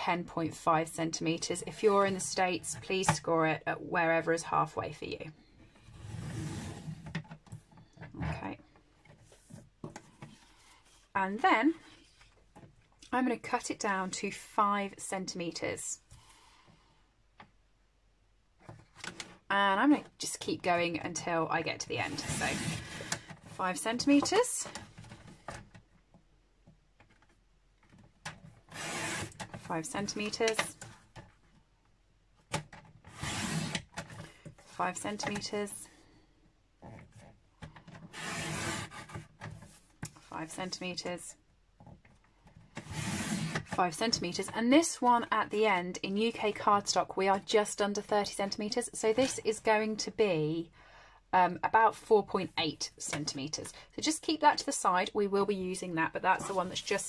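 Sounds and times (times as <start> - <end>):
paper trimmer blade scraping: 28.7 - 29.4, 38.1 - 39.0.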